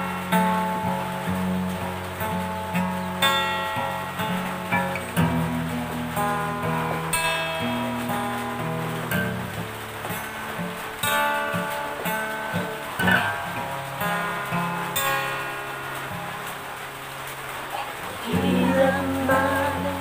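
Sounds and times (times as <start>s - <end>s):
fingerpicked acoustic guitar: 0.0s - 20.0s.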